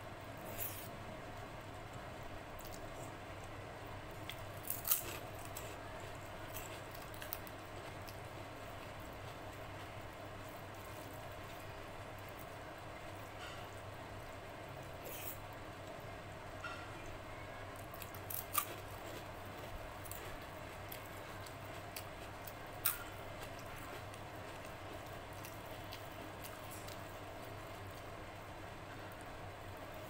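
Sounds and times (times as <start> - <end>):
low background hum: 0.0 - 30.0
crunching fried crisp: 4.0 - 12.6, 17.7 - 30.0.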